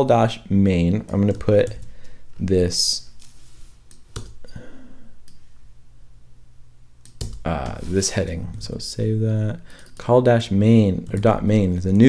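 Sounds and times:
keyboard and mouse clicks: 0:07.0 - 0:07.8.

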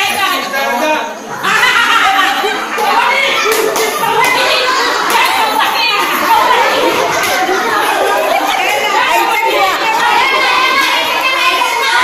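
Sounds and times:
crowd of women and children talking: 0:00.0 - 0:12.0.

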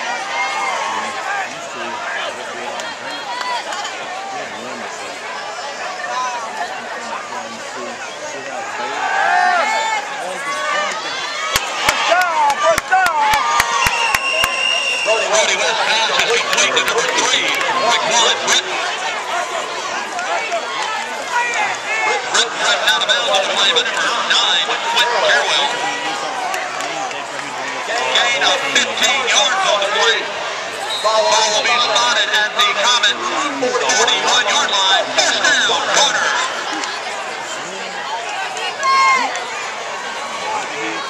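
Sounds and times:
crowd chattering: 0:00.0 - 0:41.0.

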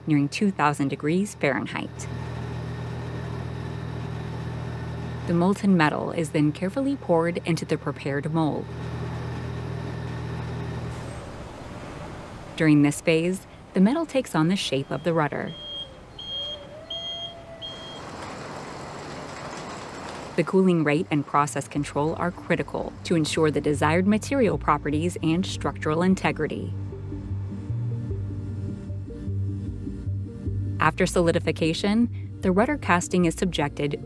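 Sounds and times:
crane warning beeper: 0:12.6 - 0:18.2
steady low hum: 0:20.4 - 0:34.0.

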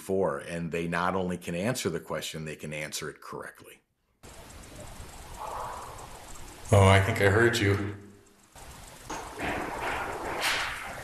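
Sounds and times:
rushing hissing noise: 0:04.2 - 0:11.0.

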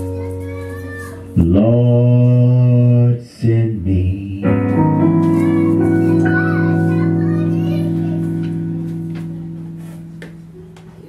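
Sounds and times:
man singing low held note: 0:01.4 - 0:04.7.

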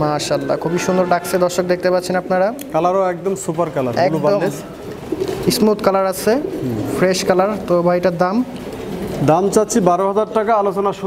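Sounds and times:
man's voice: 0:00.0 - 0:02.3
pigeons cooing: 0:00.0 - 0:11.0.

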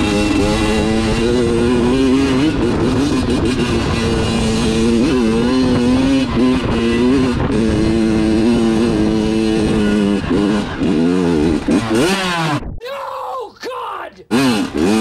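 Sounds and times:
dirt bike engine revving: 0:00.0 - 0:12.7, 0:14.2 - 0:15.0.

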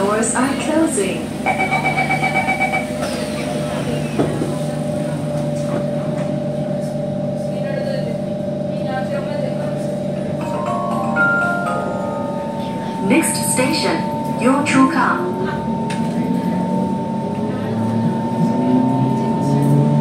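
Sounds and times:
train door-closing beeps: 0:01.4 - 0:03.4
train traction motor whining: 0:08.8 - 0:20.0.

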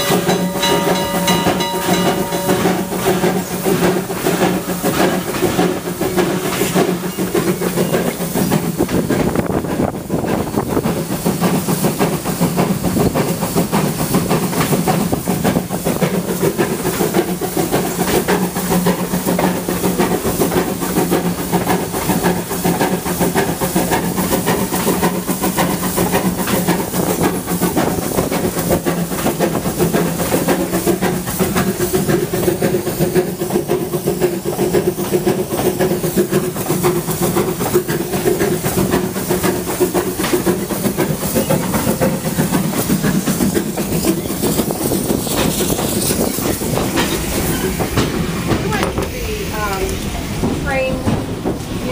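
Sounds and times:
train wheels running on track: 0:00.0 - 0:51.9.

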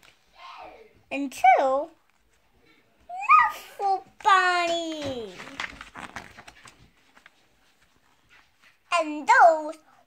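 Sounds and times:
girl reading aloud: 0:00.3 - 0:02.0, 0:03.1 - 0:06.0, 0:08.8 - 0:10.0
paper page rustling: 0:04.1 - 0:08.9.

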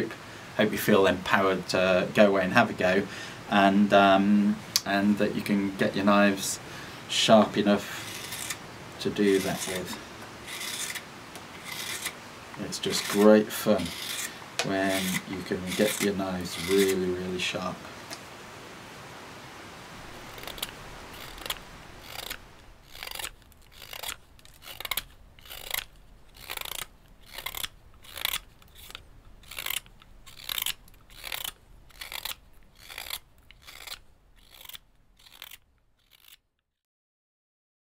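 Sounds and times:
knife slicing wood: 0:07.9 - 0:08.6, 0:09.2 - 0:17.1, 0:20.1 - 0:36.4.

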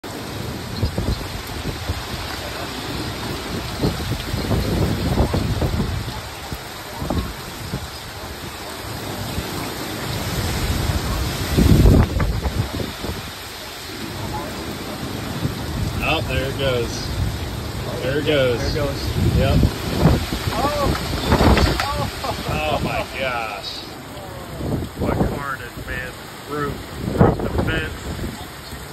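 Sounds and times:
heavy rain hissing: 0:00.0 - 0:28.9
wind gusts buffeting microphone: 0:00.0 - 0:28.9.

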